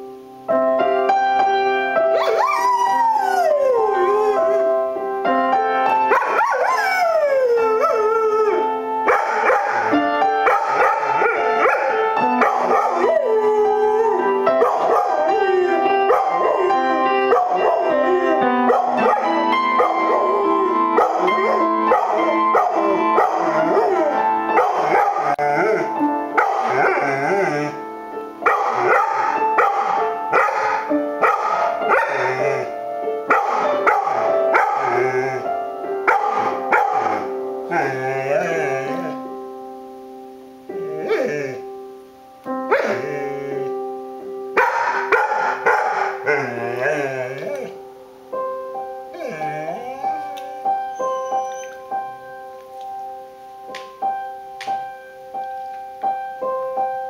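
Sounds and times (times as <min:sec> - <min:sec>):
piano playing: 0:00.0 - 0:57.0
dog howling: 0:02.2 - 0:04.8, 0:06.1 - 0:27.9, 0:28.5 - 0:39.2, 0:40.7 - 0:41.7, 0:42.7 - 0:43.8, 0:44.6 - 0:47.8, 0:49.1 - 0:52.1.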